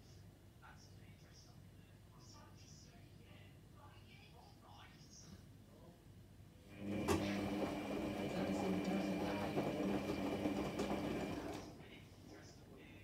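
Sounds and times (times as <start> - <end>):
washing machine motor hum: 6.6 - 12.0.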